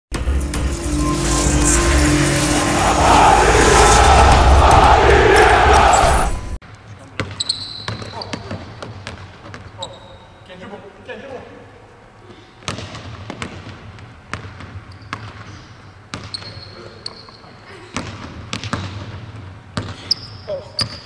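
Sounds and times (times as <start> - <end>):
music: 0.1 - 6.6
crowd cheering: 0.9 - 6.6
sneaker squeaks: 7.2 - 10.5, 14.8 - 19.1, 19.8 - 21.0.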